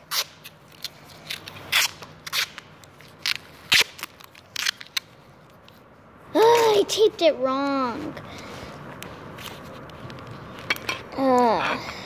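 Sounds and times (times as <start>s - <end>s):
taped tool crackling and clicking: 0.1s - 5.7s.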